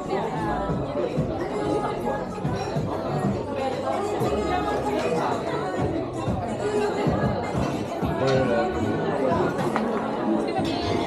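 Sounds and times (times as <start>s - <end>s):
background music: 0.0s - 11.0s
diners talking: 0.0s - 11.0s.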